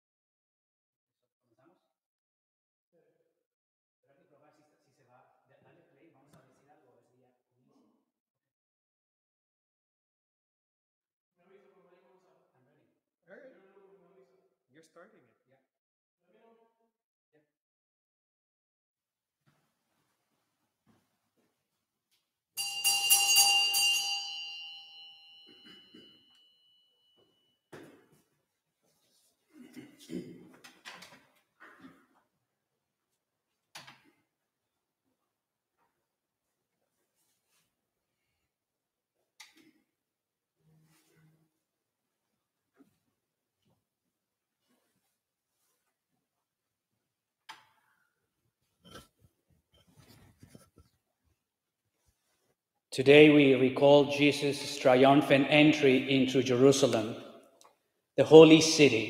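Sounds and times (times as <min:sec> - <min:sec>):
small bells ringing: 0:22.6 - 0:27.2.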